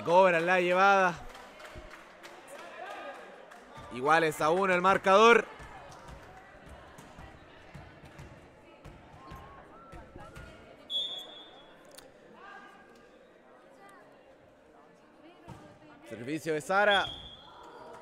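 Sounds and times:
volleyball bouncing on wooden court: 0:05.5 - 0:10.7
high whistle tone: 0:10.9 - 0:11.6.

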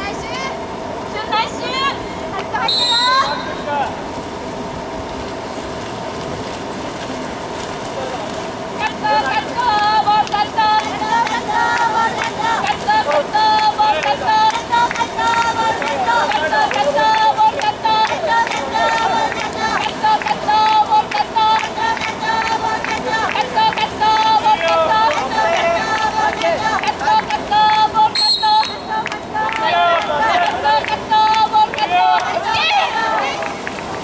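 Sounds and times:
faint steady hum: 0:00.0 - 0:34.0
swimmers splashing water: 0:00.1 - 0:34.0
spectators shouting encouragement: 0:31.6 - 0:33.6.

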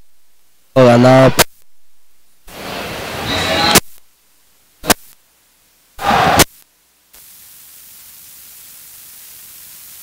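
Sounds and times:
electronic static hiss: 0:00.0 - 0:10.0
noisy burst: 0:00.0 - 0:10.0.

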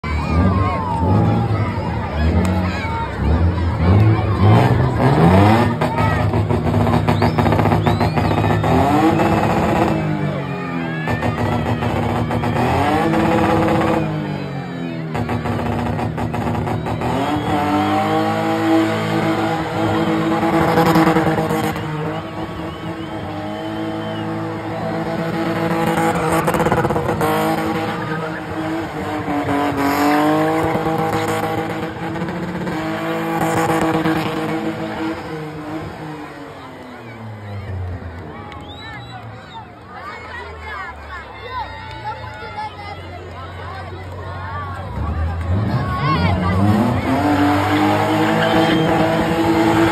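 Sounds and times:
car engine revving hard: 0:00.2 - 0:38.0, 0:44.9 - 0:49.9.

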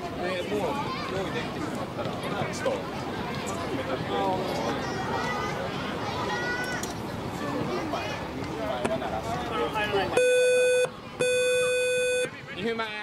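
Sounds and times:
men talking: 0:07.4 - 0:10.2, 0:12.3 - 0:13.0
electronic buzzer beeps: 0:10.2 - 0:12.3.

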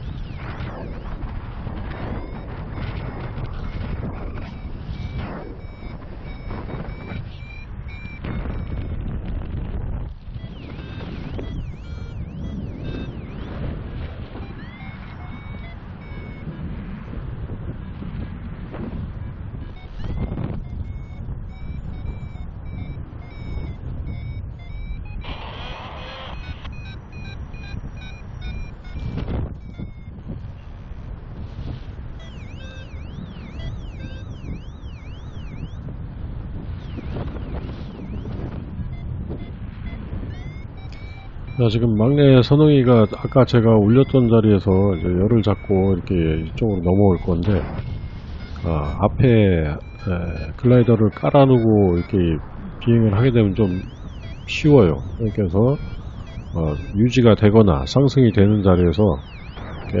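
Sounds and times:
variometer beeping: 0:00.0 - 0:17.8, 0:18.6 - 0:36.0, 0:36.6 - 1:00.0
wind rushing over microphone: 0:00.0 - 1:00.0.

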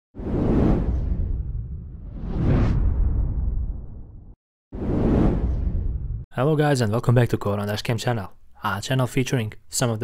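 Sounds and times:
deep whoosh: 0:00.2 - 0:06.3.

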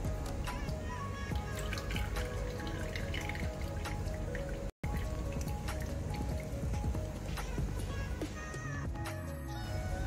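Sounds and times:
background music: 0:00.0 - 0:10.0
liquid dripping into a dish: 0:01.3 - 0:06.6.

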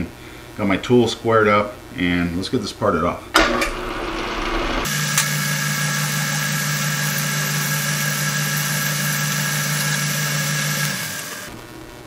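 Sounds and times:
metal lathe humming: 0:03.4 - 0:11.5.

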